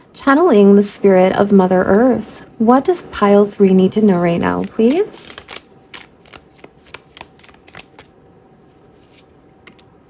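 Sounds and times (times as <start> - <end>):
cards shuffled by hand: 4.6 - 8.1, 8.7 - 9.8.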